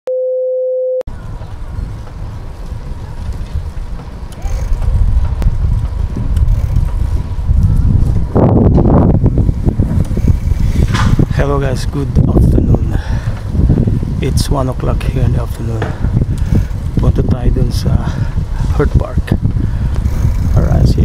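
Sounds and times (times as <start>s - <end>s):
wind buffeting microphone: 1.1s - 21.0s.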